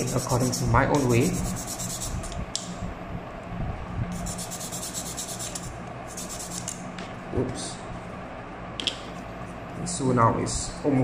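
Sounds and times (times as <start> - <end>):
sanding stick scraping plastic: 0.0 - 2.4, 4.2 - 6.7.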